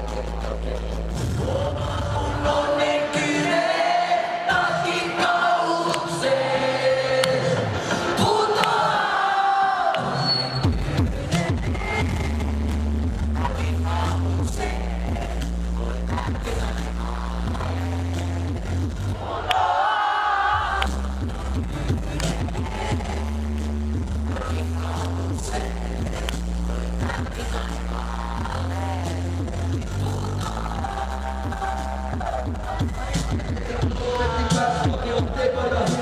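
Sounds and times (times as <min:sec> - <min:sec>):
hip-hop music with bass beat: 0:00.0 - 0:36.0
rapped vocals: 0:00.0 - 0:36.0.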